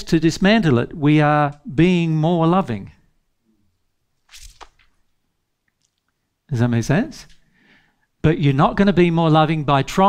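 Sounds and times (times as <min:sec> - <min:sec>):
man's sharp intake of breath: 0:07.4 - 0:08.1.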